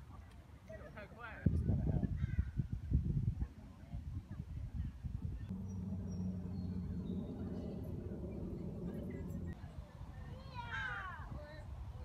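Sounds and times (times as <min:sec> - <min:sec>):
birds chirping: 0:05.5 - 0:09.6
steady low hum: 0:05.5 - 0:09.7.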